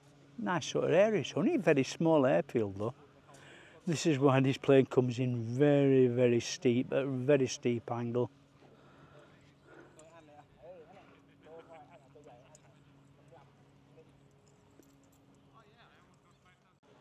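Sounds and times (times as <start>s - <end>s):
faint low hum: 0.0s - 17.0s
faint distant voices: 8.6s - 17.0s.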